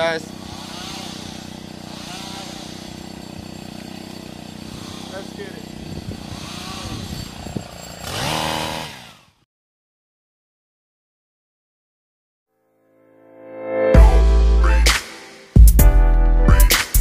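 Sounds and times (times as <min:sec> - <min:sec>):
pole saw engine idling and revving: 0:00.0 - 0:09.5.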